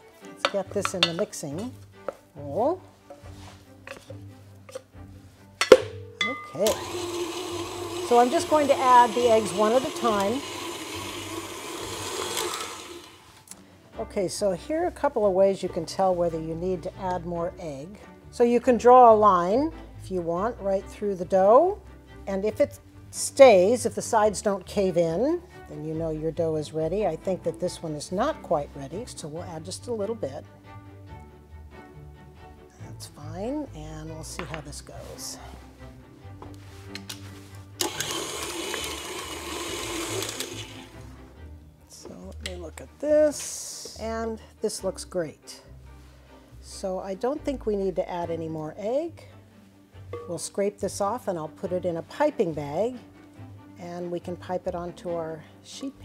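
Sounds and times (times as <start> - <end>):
stand mixer motor running: 6.6 - 13.2, 37.8 - 40.9.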